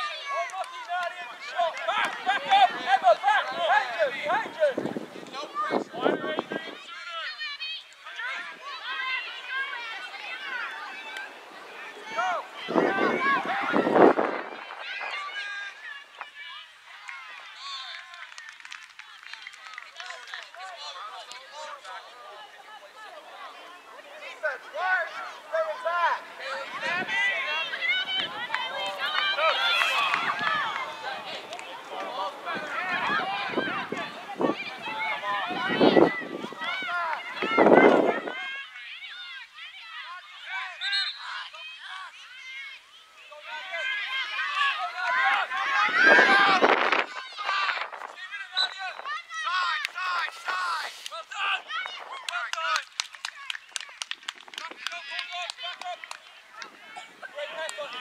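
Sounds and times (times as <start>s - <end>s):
children and adults shouting: 0.0s - 18.2s, 19.1s - 54.0s.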